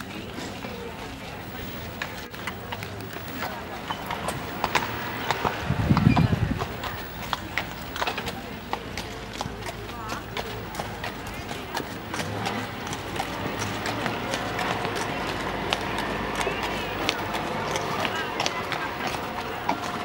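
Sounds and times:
horse hoofbeats trotting on sand: 0:00.0 - 0:20.0.

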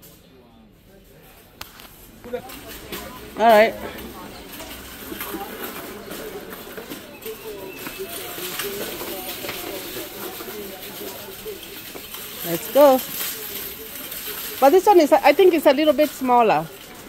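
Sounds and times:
distant voices: 0:00.1 - 0:17.0.

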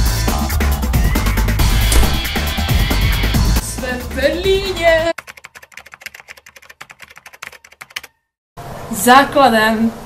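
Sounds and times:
music: 0:00.0 - 0:05.1.

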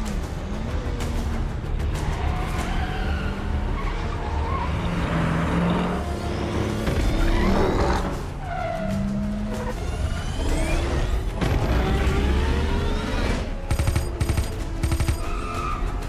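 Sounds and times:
film music: 0:00.0 - 0:16.0
vehicle engines: 0:00.0 - 0:16.0.

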